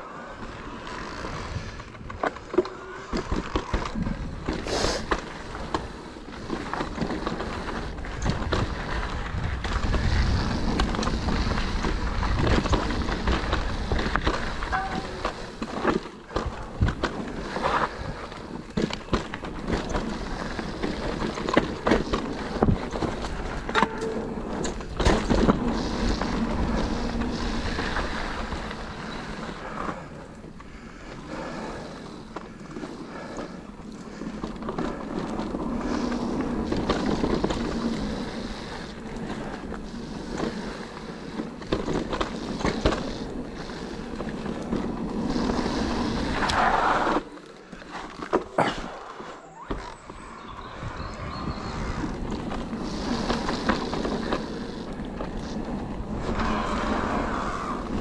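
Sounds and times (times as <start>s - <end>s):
tyres rolling on loose dirt: 0.0s - 50.4s, 51.9s - 58.0s
bike knocking and rattling: 0.3s - 49.0s, 52.0s - 56.7s
wind on microphone: 50.5s - 54.2s.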